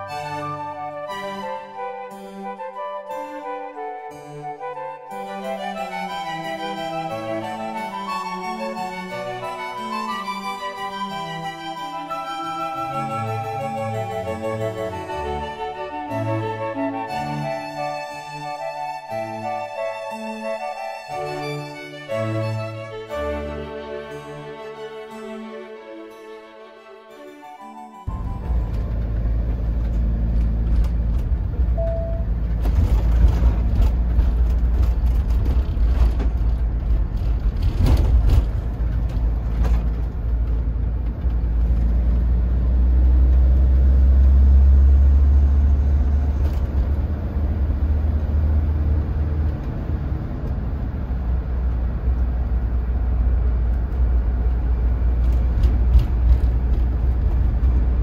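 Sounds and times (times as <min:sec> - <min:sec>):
car driving low rumble: 0:28.1 - 0:58.0.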